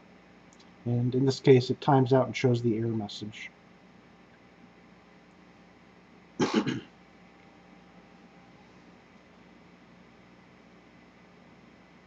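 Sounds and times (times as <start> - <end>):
man coughing: 6.4 - 6.9.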